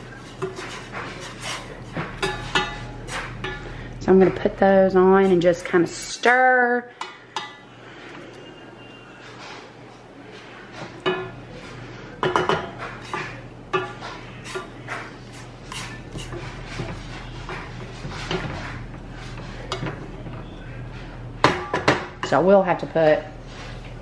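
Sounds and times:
wooden spoon stirring in saucepan: 0.0s - 6.3s, 6.9s - 24.0s.

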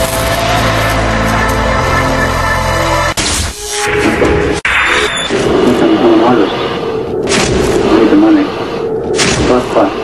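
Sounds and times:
television theme music: 0.0s - 5.3s.

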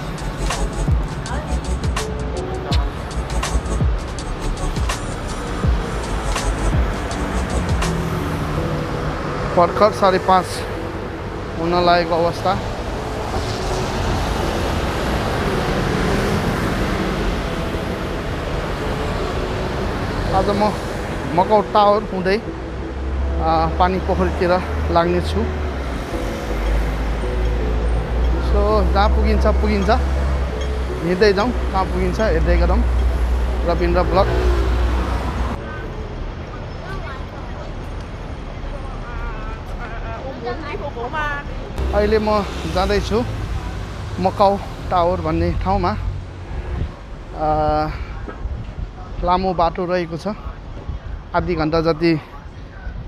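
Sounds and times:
bus passing: 0.0s - 49.2s
cars passing: 0.0s - 53.0s
city street traffic: 0.0s - 53.0s
engine and tyre rumble: 0.0s - 53.0s.

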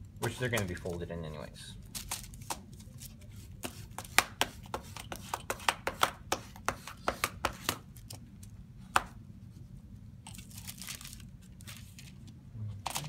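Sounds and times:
wax paper rustling: 10.3s - 13.0s.

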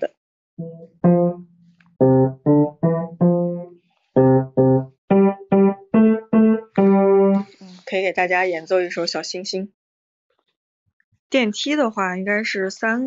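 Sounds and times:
grand piano slow tune: 0.6s - 7.6s.

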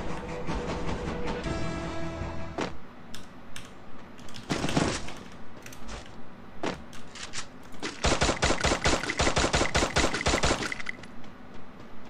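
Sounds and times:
video game gunfire: 4.4s - 6.0s, 6.6s - 11.1s.

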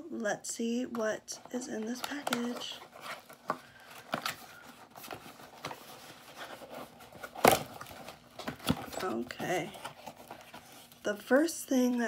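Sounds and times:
package crinkling and rustling: 1.8s - 11.2s.

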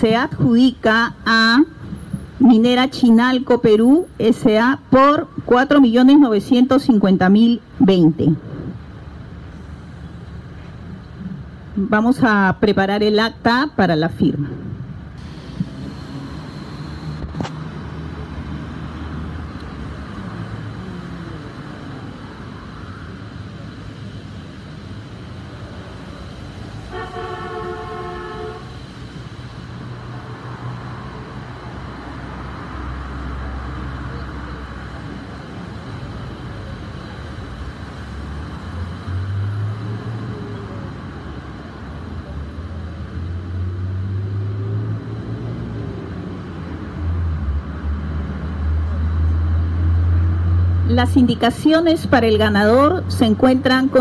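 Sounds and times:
horn-like chord: 26.9s - 28.7s.

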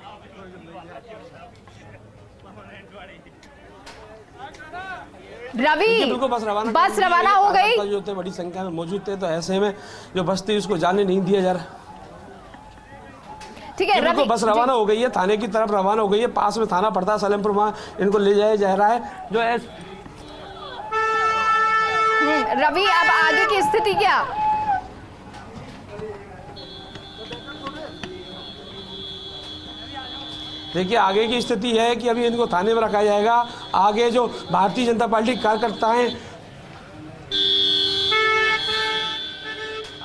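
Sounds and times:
voices: 0.0s - 40.0s
vehicle horn blast: 20.2s - 23.6s, 26.6s - 31.6s, 32.3s - 36.2s, 37.3s - 40.0s.

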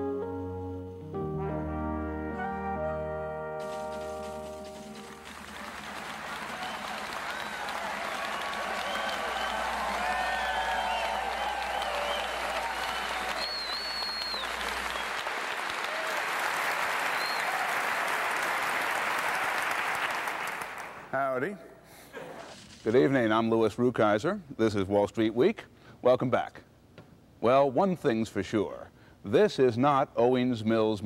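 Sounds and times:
brass theme music: 0.0s - 13.6s
audience applauding: 3.6s - 21.1s
people cheering: 3.7s - 21.1s.

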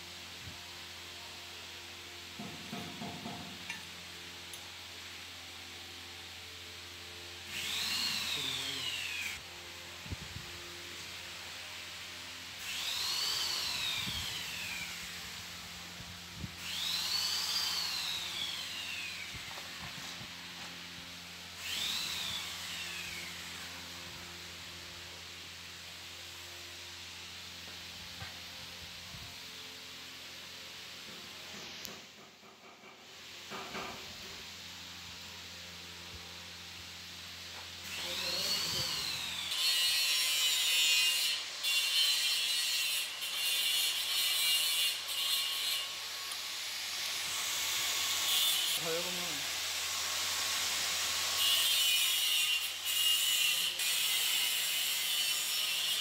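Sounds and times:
power tool motor whine: 7.4s - 11.2s, 12.5s - 25.5s, 37.4s - 41.4s.

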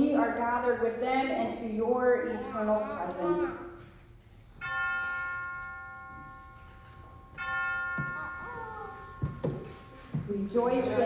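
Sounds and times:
bell ringing: 4.5s - 11.0s.

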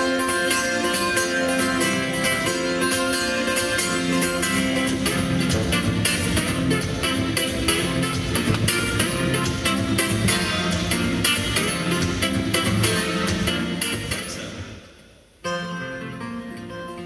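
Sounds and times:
fingerstyle acoustic guitar: 0.0s - 17.0s.

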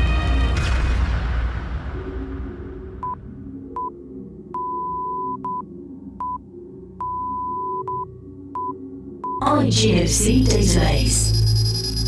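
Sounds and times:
soft low music bed: 0.0s - 12.0s
electronic morse-like beeps: 3.8s - 6.4s, 7.0s - 12.0s.

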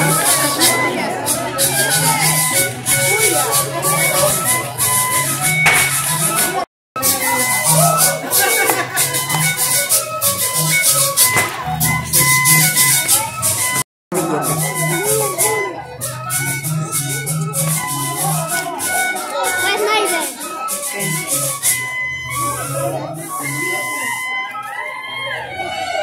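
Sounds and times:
folk festival melody: 0.0s - 26.0s
voices: 0.0s - 26.0s.

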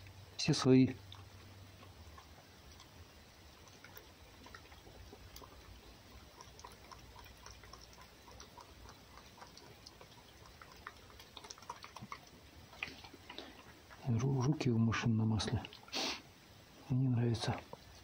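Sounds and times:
fox eating from a bowl: 0.0s - 16.1s, 16.8s - 18.0s.

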